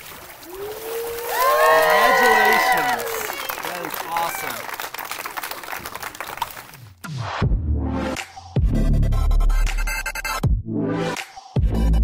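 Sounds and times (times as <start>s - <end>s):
crowd applauding: 0.4s - 6.9s.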